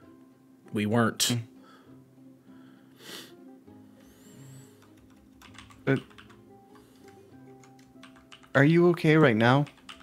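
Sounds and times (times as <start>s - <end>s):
quiet background music: 0.0s - 10.0s
keyboard typing clicks: 4.7s - 8.6s, 9.6s - 10.0s.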